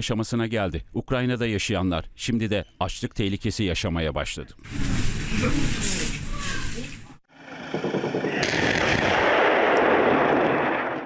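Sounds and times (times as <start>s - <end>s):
rockets launching roar: 7.4s - 11.0s.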